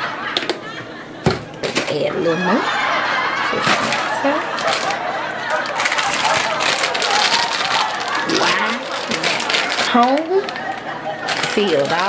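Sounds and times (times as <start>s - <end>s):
plastic wrapper crinkling: 3.6s - 12.0s.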